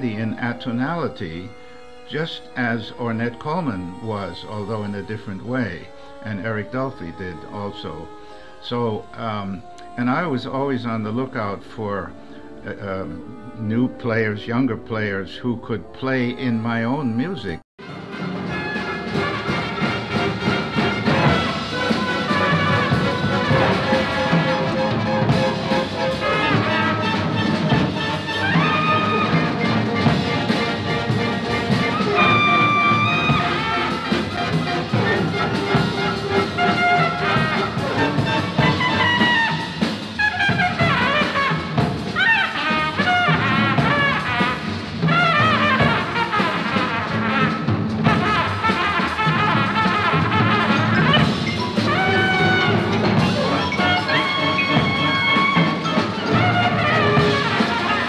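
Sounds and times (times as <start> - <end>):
jazz trumpet: 17.5 - 58.0
drums: 17.8 - 58.0
double bass: 18.8 - 58.0.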